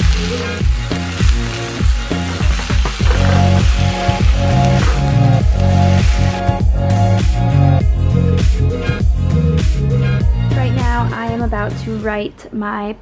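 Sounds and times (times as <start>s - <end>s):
background music with steady beat: 0.0s - 12.5s.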